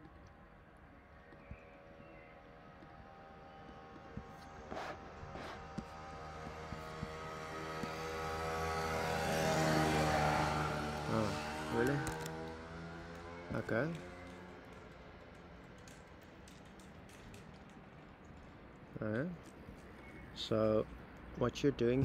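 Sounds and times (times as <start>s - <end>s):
engine hum: 0.0s - 22.0s.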